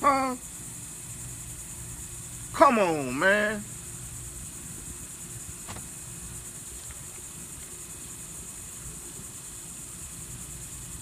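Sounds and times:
high hiss: 0:00.0 - 0:11.0.

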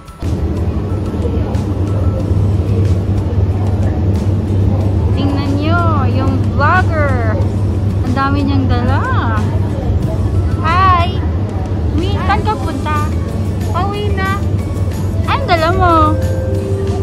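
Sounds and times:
railway platform low rumble: 0:00.0 - 0:17.0.

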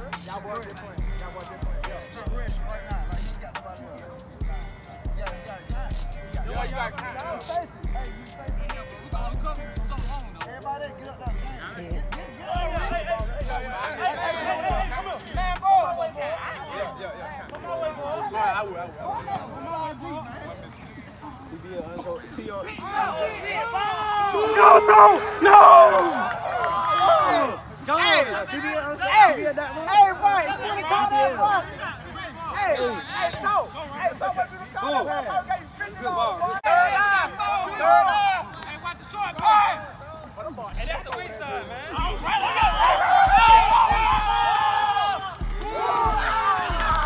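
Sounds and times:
men shouting: 0:00.0 - 0:17.0, 0:22.7 - 0:39.8, 0:40.8 - 0:47.0
distant men talking and calling out: 0:00.0 - 0:47.0.

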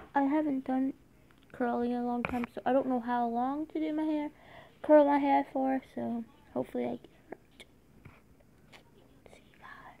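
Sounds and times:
person whispering: 0:09.2 - 0:10.0.

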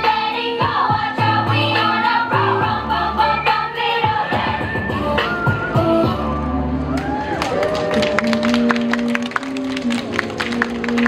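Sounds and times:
audience clapping: 0:06.9 - 0:11.0.

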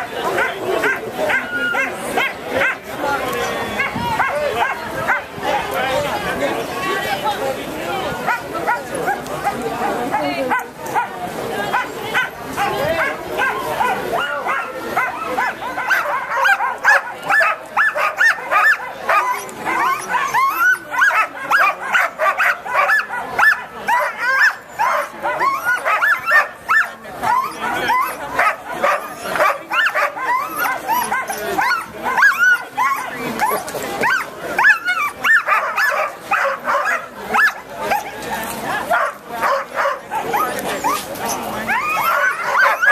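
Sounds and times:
dogs barking and yipping: 0:00.0 - 0:05.4, 0:08.2 - 0:42.9.

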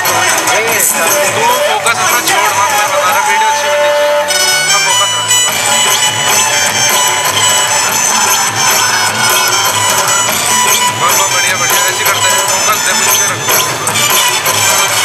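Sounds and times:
folk dance music: 0:00.0 - 0:15.0.

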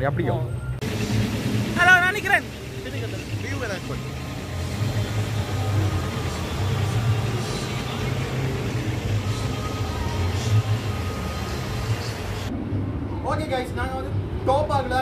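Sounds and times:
low rumble: 0:11.8 - 0:14.9.

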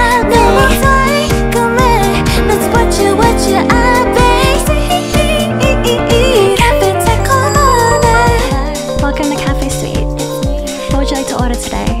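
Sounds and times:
person singing: 0:00.0 - 0:11.1
bass: 0:00.0 - 0:12.0
drum beat: 0:07.3 - 0:12.0.

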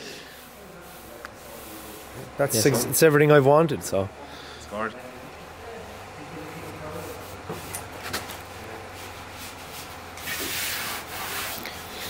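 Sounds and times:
scratchy rubbing on car panel: 0:09.0 - 0:11.7.

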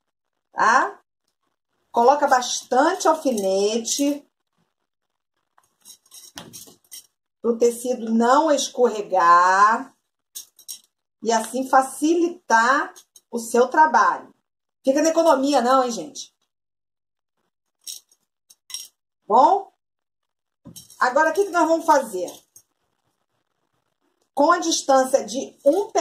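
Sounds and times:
fabric rustling: 0:01.4 - 0:07.2, 0:20.7 - 0:23.3.

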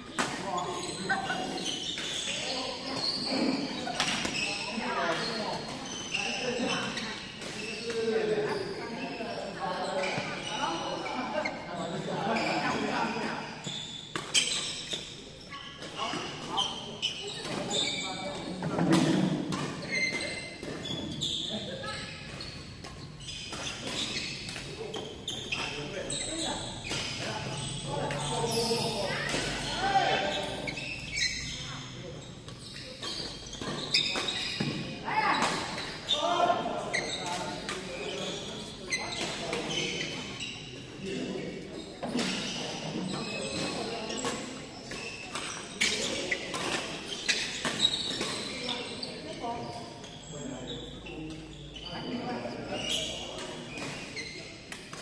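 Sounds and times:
players' voices: 0:00.0 - 0:22.3, 0:23.0 - 0:55.0.

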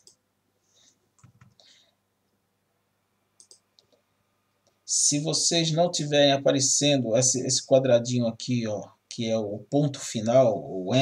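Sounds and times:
computer mouse clicking: 0:00.0 - 0:00.2, 0:01.2 - 0:01.7, 0:03.4 - 0:04.0.

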